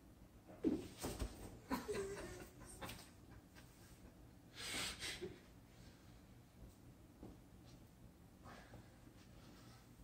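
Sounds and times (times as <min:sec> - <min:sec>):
person breathing with exertion: 0:04.5 - 0:06.3.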